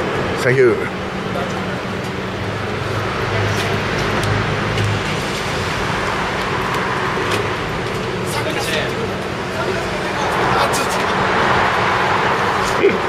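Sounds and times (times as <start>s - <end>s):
car engine idling: 0.0s - 13.0s
vehicle noise rumble: 0.0s - 13.0s.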